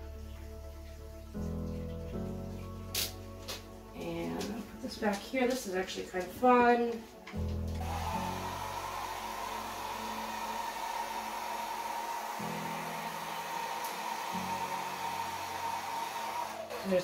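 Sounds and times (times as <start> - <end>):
hair dryer running: 7.7 - 17.0.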